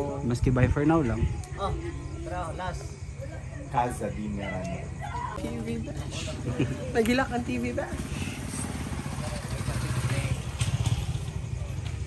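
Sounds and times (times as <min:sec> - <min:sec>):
motorcycle engine idling: 0:06.2 - 0:12.0.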